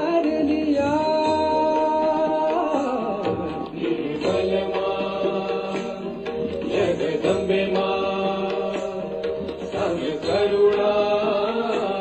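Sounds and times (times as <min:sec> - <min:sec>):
chanted mantra singing: 0:00.0 - 0:12.0.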